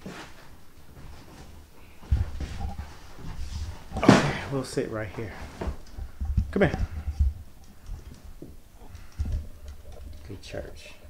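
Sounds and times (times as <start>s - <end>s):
microphone rubbing against shirt: 1.2s - 10.3s.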